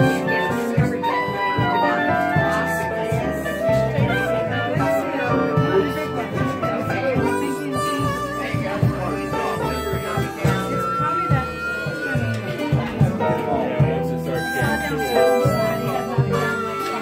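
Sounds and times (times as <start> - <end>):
fiddle and wind melody: 0.0 - 17.0
upright bass plucking: 0.0 - 17.0.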